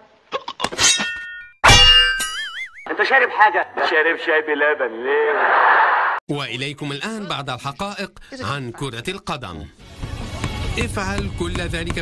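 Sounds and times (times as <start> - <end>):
metallic clang with long ring: 1.0 - 2.4.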